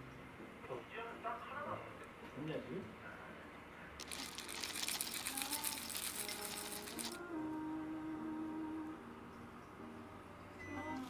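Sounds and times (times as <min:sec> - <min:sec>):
granola pouring into bowl: 0:04.0 - 0:07.2.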